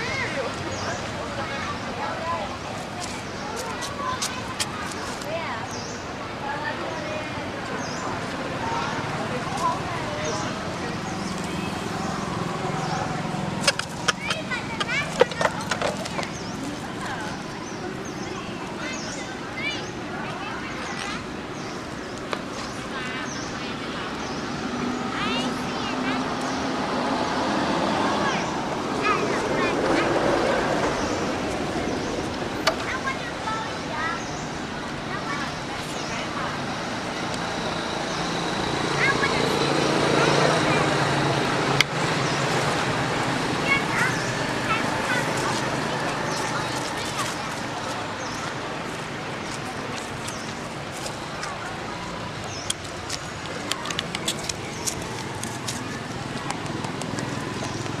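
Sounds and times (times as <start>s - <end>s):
vehicle engine running: 8.8s - 17.7s, 36.6s - 58.0s.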